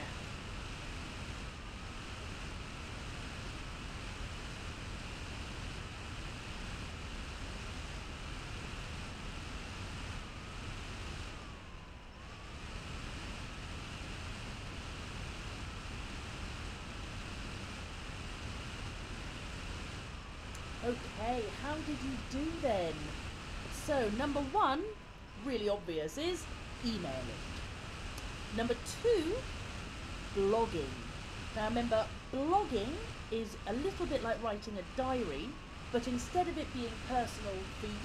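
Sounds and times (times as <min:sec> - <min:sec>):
faint wavering high whine: 0:00.0 - 0:38.0
microphone hiss: 0:00.0 - 0:38.0.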